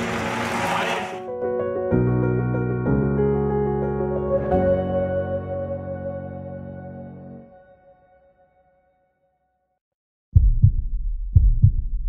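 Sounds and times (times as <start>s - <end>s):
heartbeat thumps: 10.4s - 12.0s.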